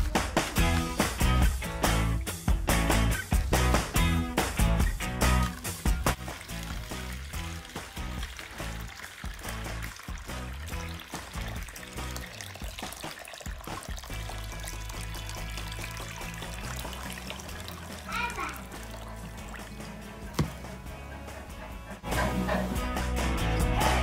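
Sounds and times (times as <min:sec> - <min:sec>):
background music: 0:00.0 - 0:24.0
water pouring from a kettle: 0:04.8 - 0:20.7.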